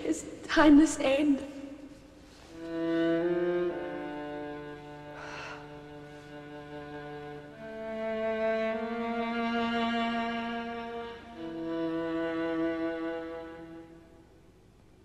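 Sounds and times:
bowed strings slow chords: 2.6 - 14.5.

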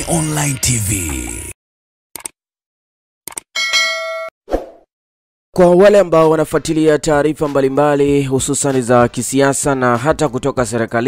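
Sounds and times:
bright bell-like ding: 3.6 - 4.3.

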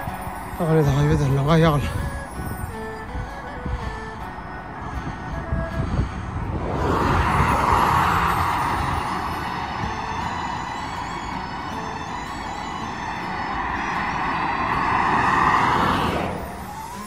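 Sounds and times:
motorway traffic passing: 0.0 - 17.0.

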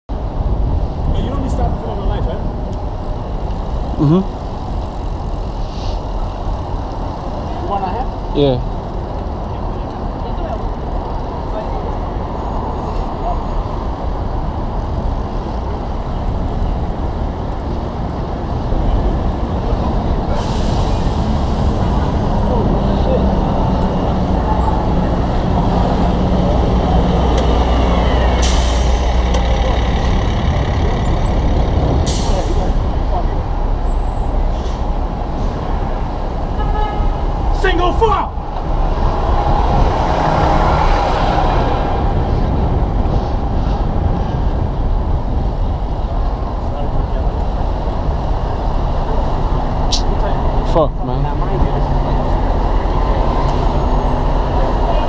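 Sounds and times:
bus and truck engines: 0.1 - 55.0
air brakes hissing: 5.6 - 6.1, 20.3 - 22.0, 28.4 - 29.2, 32.0 - 32.8.

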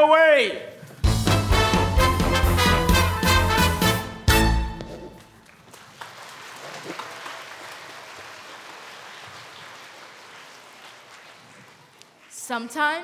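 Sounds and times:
audience applauding: 5.1 - 12.4.

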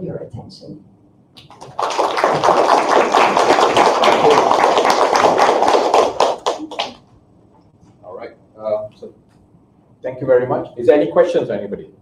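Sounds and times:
audience applauding: 1.4 - 7.0.

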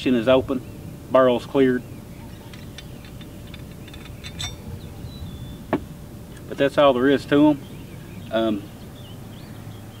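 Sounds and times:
handling noise: 2.4 - 4.9.

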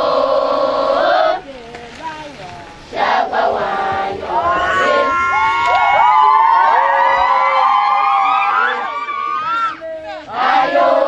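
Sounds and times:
crowd cheering and shouting: 4.2 - 10.8.

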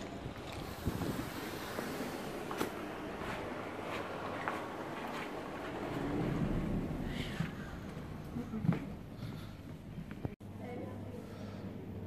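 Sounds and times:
low rumble and hiss: 0.0 - 12.0.

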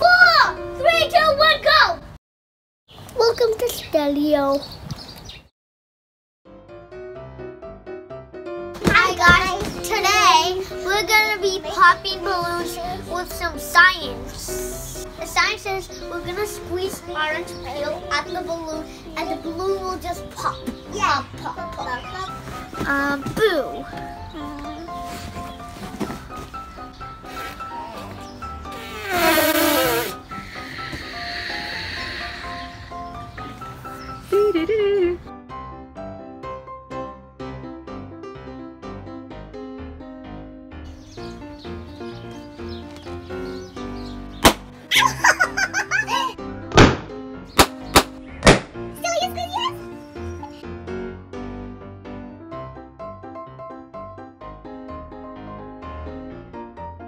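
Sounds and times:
simple background melody: 0.0 - 2.0, 6.5 - 57.0
child's voice: 0.0 - 2.1, 3.1 - 4.7, 8.8 - 25.0, 49.0 - 50.6
cheerful background music: 0.0 - 2.2, 6.7 - 57.0
air blown into balloon: 27.3 - 35.2
air squealing out of balloon: 28.7 - 33.3
sharp bangs: 46.7 - 48.8.

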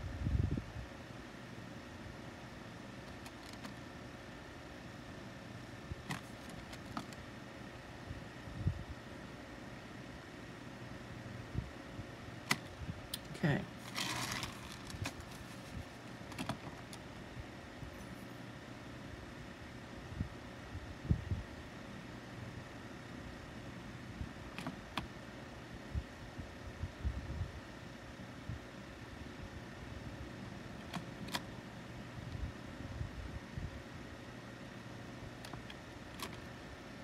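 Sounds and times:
steady background hum: 0.0 - 37.0.

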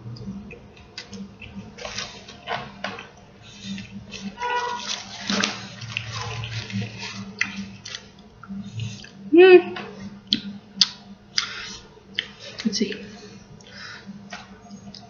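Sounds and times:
person chewing food: 0.1 - 9.3, 10.0 - 15.0.

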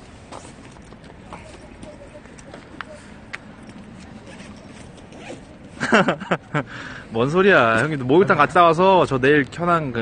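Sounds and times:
outdoor background noise: 0.0 - 10.0
man laughing: 5.7 - 6.8.

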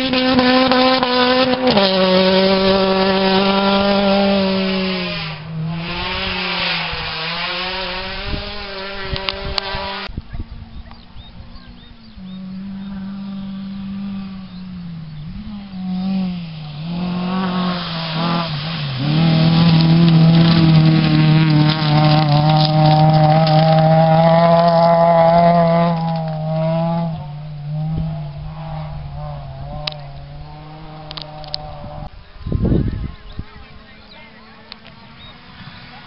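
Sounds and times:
rally car engine at full throttle: 0.0 - 36.0.

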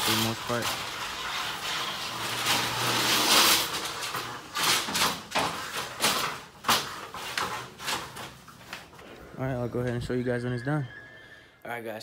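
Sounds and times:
plastic sheeting rustling: 0.0 - 9.0.

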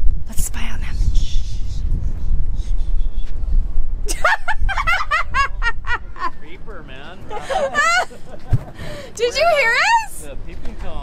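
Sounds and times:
person giggling: 4.1 - 6.4, 7.3 - 8.8.

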